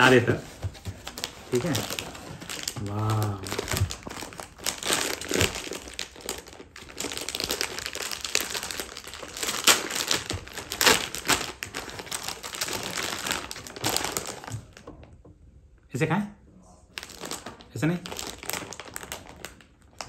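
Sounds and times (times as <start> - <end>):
plastic bag crinkling: 0.0 - 15.1, 16.9 - 20.0.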